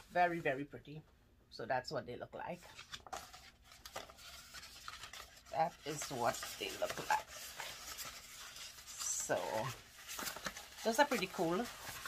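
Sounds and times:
plastic sheet rustling: 0:02.8 - 0:12.0.

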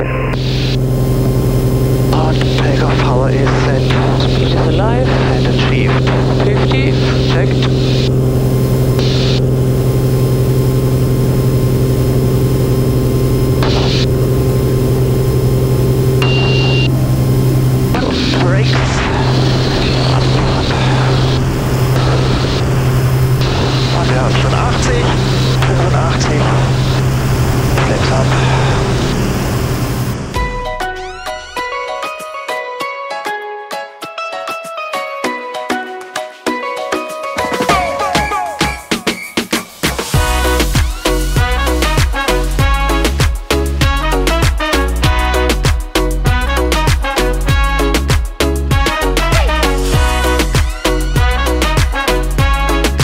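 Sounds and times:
aircraft engine and propeller drone: 0:00.3 - 0:31.8.

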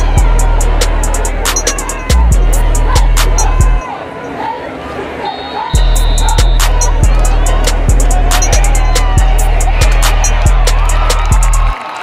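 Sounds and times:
background music with heavy bass: 0:00.0 - 0:03.8, 0:05.8 - 0:11.8
crisp hi-hats: 0:05.8 - 0:11.6.

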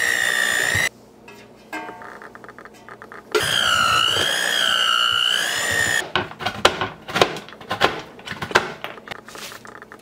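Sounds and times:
electric hand mixer whine: 0:00.0 - 0:00.9, 0:03.4 - 0:06.0.

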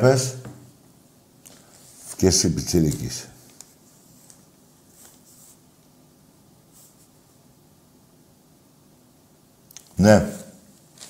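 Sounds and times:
room hiss: 0:00.0 - 0:11.0
paper rustling: 0:01.4 - 0:05.6, 0:10.7 - 0:11.0.

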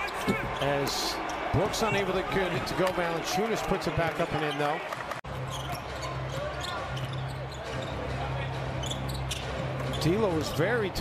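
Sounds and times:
shoe squeaks and clicks: 0:04.4 - 0:08.1, 0:08.7 - 0:10.2.

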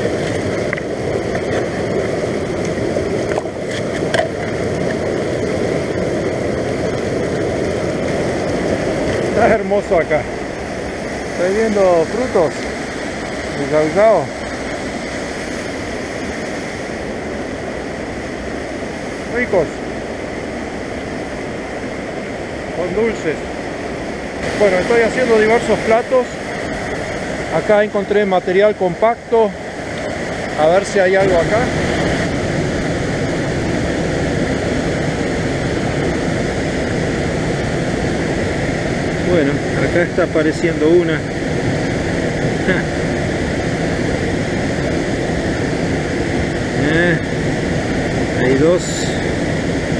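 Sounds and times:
river rushing: 0:00.0 - 0:49.9.

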